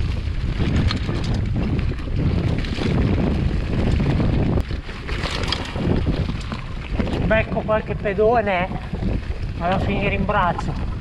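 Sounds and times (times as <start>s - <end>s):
mountain bike rattling downhill: 0.0s - 11.0s
wind buffeting microphone: 0.0s - 11.0s.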